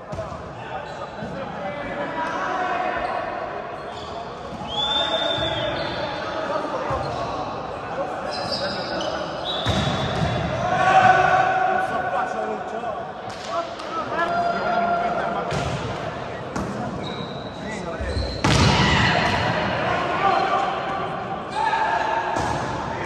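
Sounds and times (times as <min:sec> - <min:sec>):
shoes squeaking on court floor: 0:08.2 - 0:10.3, 0:16.6 - 0:18.6.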